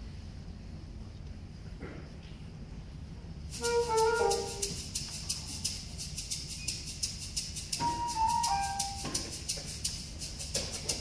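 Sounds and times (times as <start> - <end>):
shaker playing samba rhythm: 3.5 - 11.0.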